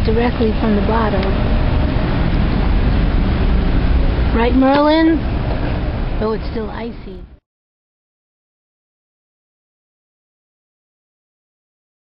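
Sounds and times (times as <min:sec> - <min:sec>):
wind buffeting microphone: 0:00.0 - 0:07.3
heavy low rumble: 0:00.0 - 0:07.4
street traffic hum: 0:00.0 - 0:07.4.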